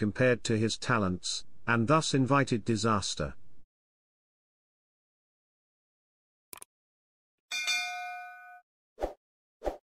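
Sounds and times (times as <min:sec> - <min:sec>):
notification bell chime: 0:07.5 - 0:08.6.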